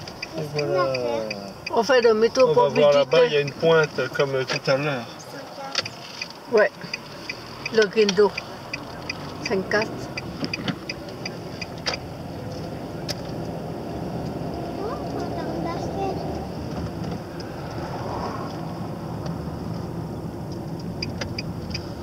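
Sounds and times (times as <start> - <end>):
car engine and tyre noise: 0.0 - 22.0.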